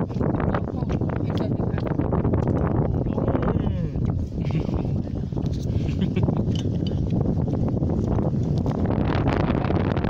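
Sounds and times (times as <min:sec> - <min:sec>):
wind buffeting microphone: 0:00.0 - 0:10.0
people talking: 0:00.6 - 0:02.0, 0:03.0 - 0:04.0.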